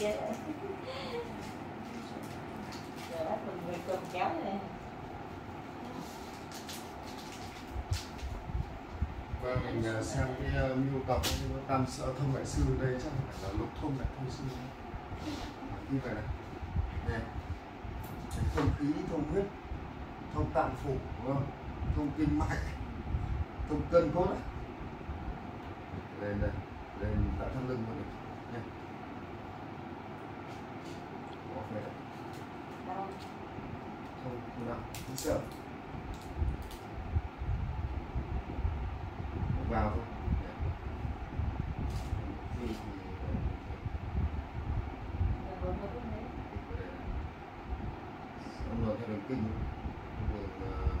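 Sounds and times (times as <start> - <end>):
low background rumble: 0.0 - 51.0
room noise hum and hiss: 0.0 - 51.0.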